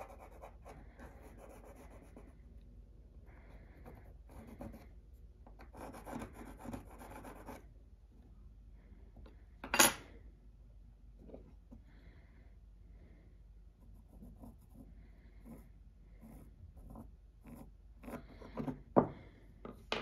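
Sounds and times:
pencil scratching on wood: 0.0 - 2.4, 3.7 - 5.0, 5.6 - 7.6, 13.8 - 18.8.

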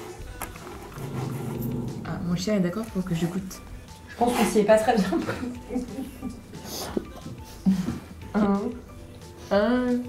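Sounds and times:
light background music: 0.0 - 10.0
dog making low drawn-out sound: 1.0 - 2.2.

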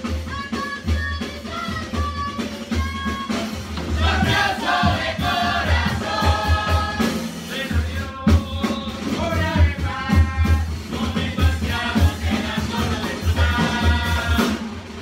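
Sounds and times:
drum beating: 0.0 - 15.0
children singing in unison: 4.0 - 7.3, 11.6 - 14.7.

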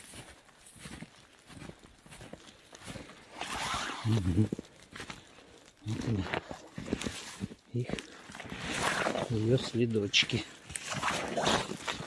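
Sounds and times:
rustle: 0.0 - 5.2
footsteps crunching in snow: 0.0 - 12.0.

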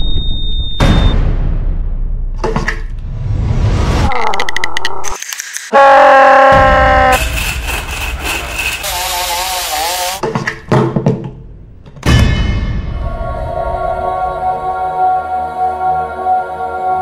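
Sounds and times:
music: 0.8 - 3.9, 11.9 - 17.0.

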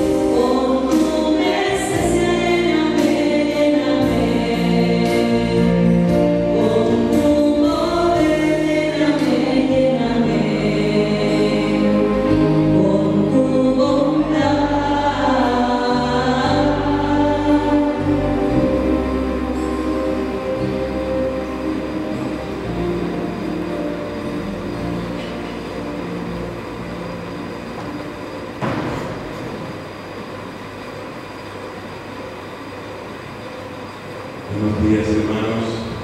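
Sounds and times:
person singing: 0.0 - 20.6
electronic keyboard chords: 0.0 - 30.8
knock: 28.6 - 29.2.

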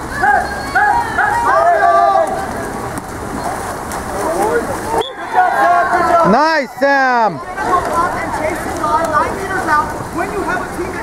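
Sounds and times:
distant voices shouting: 0.0 - 11.0
water splashing in a pool: 0.0 - 11.0.

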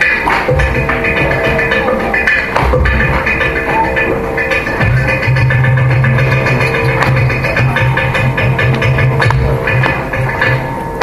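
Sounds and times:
electric mandolin melody: 0.0 - 11.0
percussion strokes: 0.0 - 11.0.

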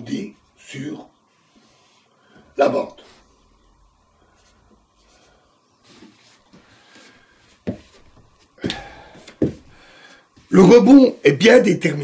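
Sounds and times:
soft rustle: 1.2 - 8.6.

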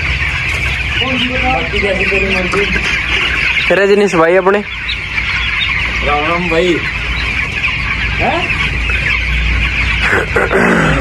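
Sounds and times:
chicks peeping in chorus: 0.0 - 11.0.

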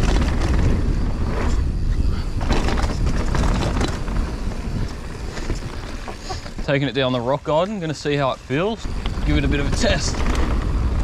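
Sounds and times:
bike clicks and rattles: 0.0 - 11.0
wind and tyres rumbling: 0.0 - 11.0.

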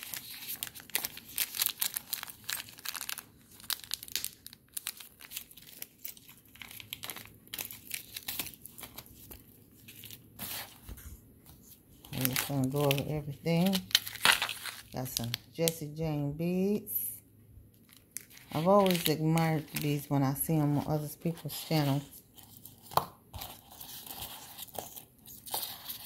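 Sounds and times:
plastic bags crinkling: 0.0 - 10.8, 12.0 - 15.6, 17.8 - 22.7.

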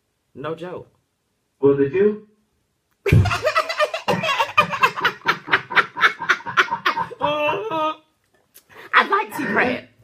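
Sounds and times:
woman laughing hard: 3.1 - 8.0.

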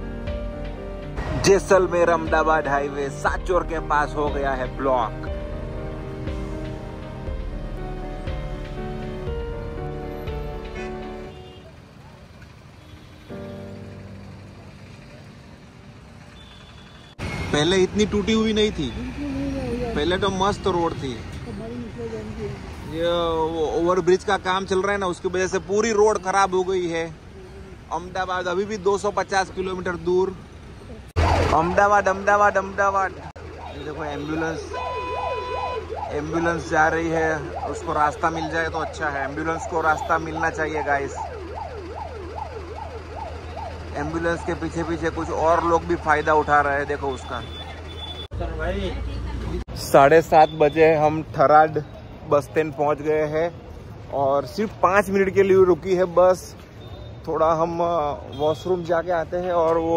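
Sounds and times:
bus engine rumble: 0.0 - 28.7
road traffic: 0.0 - 59.9
ambulance siren yelping: 31.2 - 48.3.

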